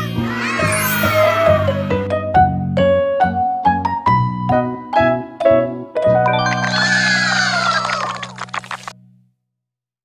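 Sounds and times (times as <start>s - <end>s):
sound effect sliding down in pitch: 6.3s - 8.8s.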